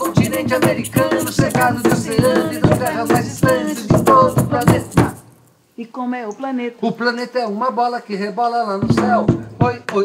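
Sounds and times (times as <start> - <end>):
person singing: 0.0 - 5.2.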